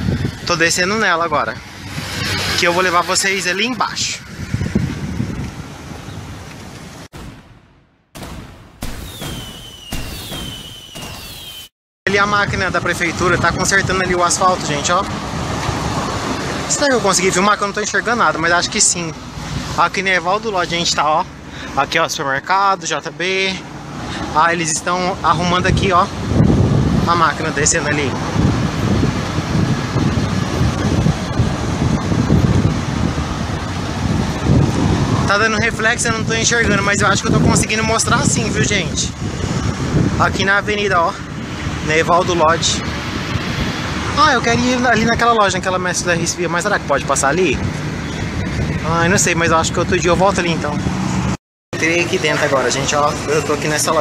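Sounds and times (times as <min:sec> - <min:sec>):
wind on microphone: 0:00.0 - 0:07.6, 0:25.4 - 0:46.3, 0:47.4 - 0:51.4
street noise: 0:00.0 - 0:54.0
fireworks bangs and crackling: 0:07.1 - 0:11.7
high falling whistle: 0:08.8 - 0:11.7.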